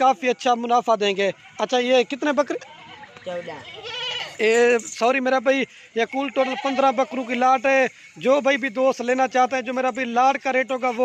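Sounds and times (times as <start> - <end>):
goats bleating: 3.6 - 4.6, 6.2 - 7.4.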